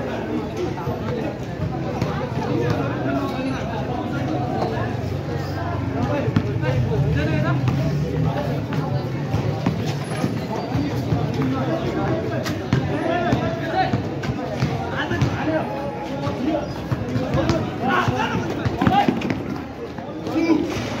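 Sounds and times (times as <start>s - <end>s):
people talking and calling out: 0.0s - 21.0s
basketball bouncing on concrete: 8.6s - 15.6s, 16.2s - 20.0s.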